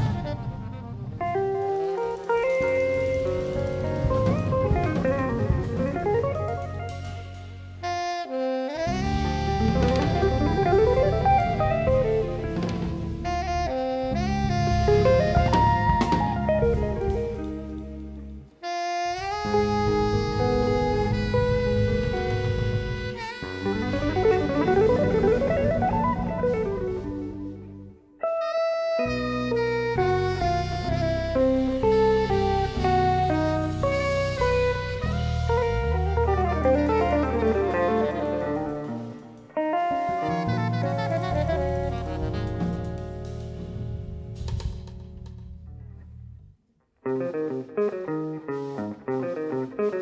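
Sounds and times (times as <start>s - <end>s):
soprano saxophone melody: 0.0s - 44.6s
jazz band playing: 0.0s - 50.0s.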